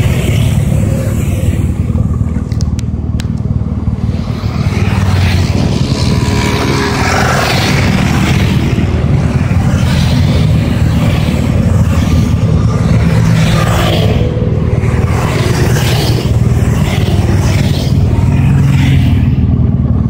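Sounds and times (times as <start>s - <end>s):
motorcycle engine rumble: 0.0s - 20.0s
road and wind noise: 0.0s - 20.0s.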